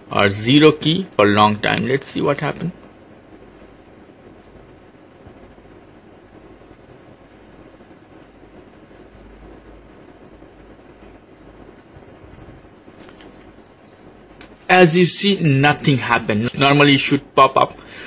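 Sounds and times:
faint hiss: 0.0s - 18.0s
low hum: 0.0s - 18.0s.

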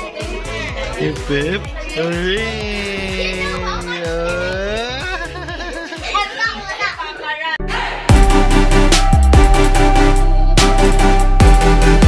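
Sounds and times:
background music: 0.0s - 12.0s
young child babbling: 2.0s - 5.2s.

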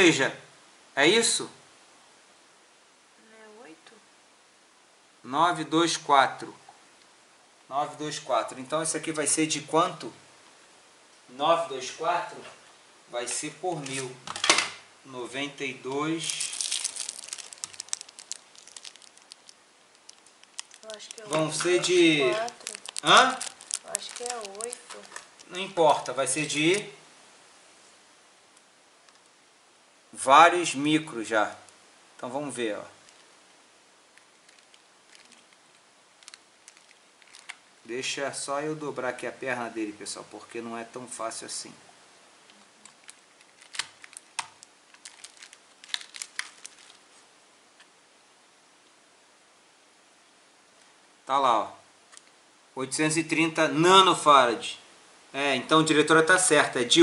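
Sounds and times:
plastic bag crinkling: 15.9s - 26.9s, 33.0s - 33.3s, 34.2s - 37.6s, 42.8s - 47.2s.

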